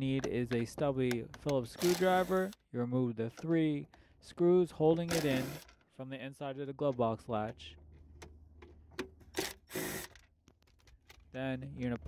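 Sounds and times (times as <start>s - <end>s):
impact driver running: 1.8s - 2.6s, 5.1s - 5.7s.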